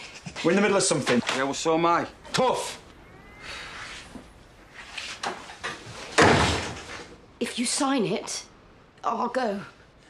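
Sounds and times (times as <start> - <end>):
quiet rustling and shuffling: 0.0 - 1.8, 2.7 - 7.2
door slamming: 6.1 - 7.1.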